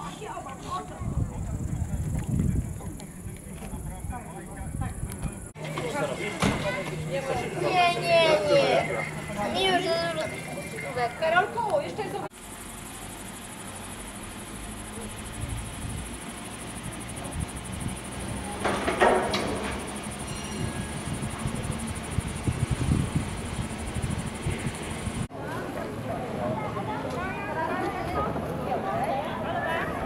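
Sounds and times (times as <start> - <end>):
gondola lift mechanical hum: 1.3 - 30.0.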